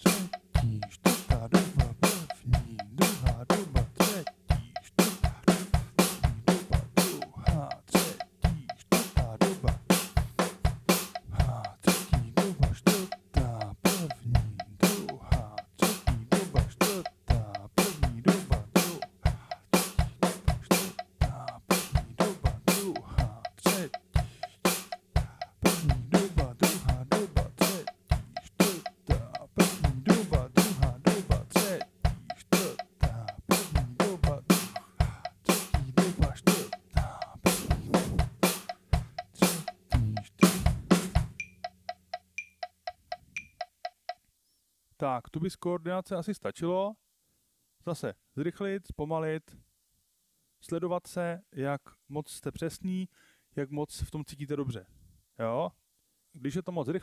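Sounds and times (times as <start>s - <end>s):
drum kit playing: 0.0s - 44.2s.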